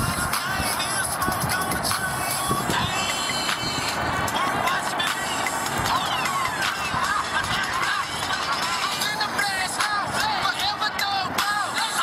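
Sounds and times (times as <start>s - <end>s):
hip-hop beat: 0.0s - 12.0s.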